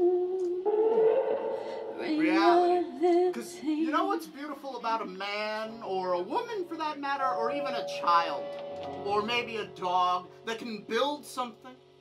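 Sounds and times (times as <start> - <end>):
person singing wavering notes: 0.0 - 3.9, 7.1 - 9.8.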